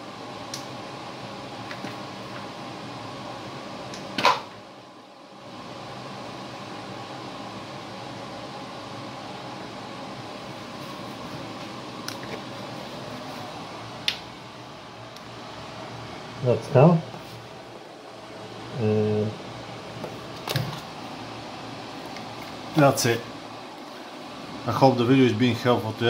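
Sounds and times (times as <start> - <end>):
steady mechanical hum: 0.0 - 26.0.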